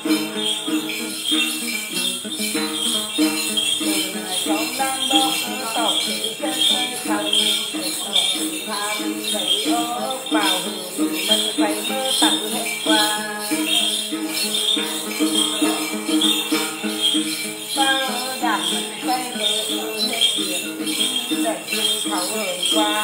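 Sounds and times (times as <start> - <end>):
jingle bells shaken: 0.0 - 23.0
person singing: 0.0 - 23.0
plucked lute figure: 0.0 - 23.0.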